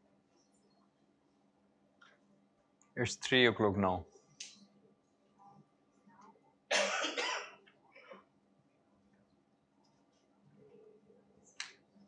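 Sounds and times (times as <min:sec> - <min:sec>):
person coughing: 0:06.7 - 0:07.6.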